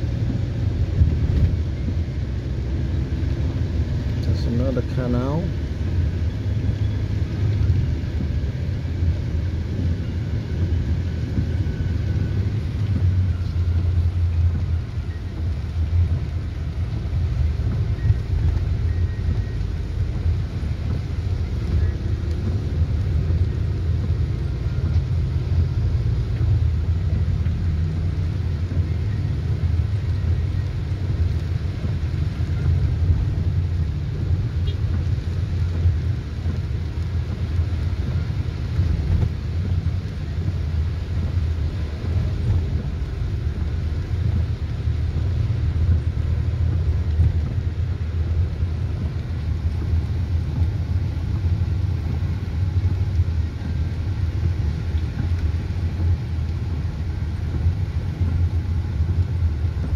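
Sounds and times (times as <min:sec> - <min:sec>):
tyres on wet road: 0:00.0 - 0:59.9
vehicle engine rumble: 0:00.0 - 0:59.9.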